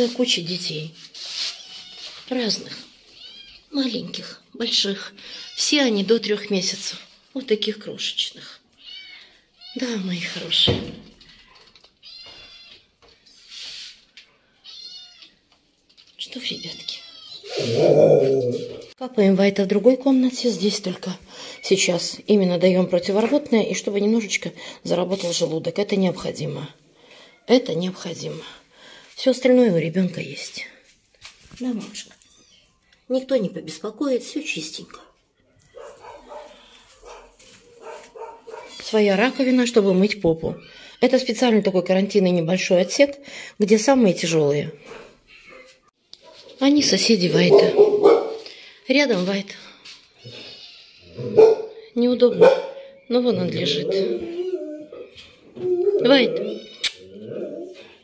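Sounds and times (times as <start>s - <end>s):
rustling noise: 0.0s - 3.6s, 13.1s - 14.2s, 30.1s - 32.3s, 35.7s - 38.8s
kittens mewing: 16.7s - 18.9s.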